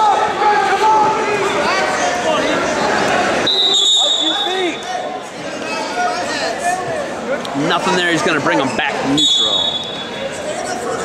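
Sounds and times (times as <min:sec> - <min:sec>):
referee's whistle blast: 0:03.4 - 0:04.9, 0:09.2 - 0:10.2.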